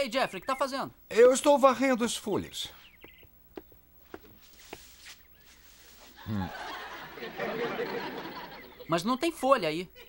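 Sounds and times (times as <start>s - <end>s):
light footsteps: 2.7s - 6.2s
straw broom sweeping paving: 4.1s - 6.2s.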